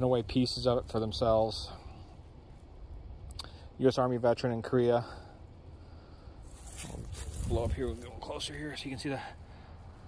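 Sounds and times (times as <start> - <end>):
handling rustle: 6.4 - 8.9
wind rumble on microphone: 6.7 - 8.4.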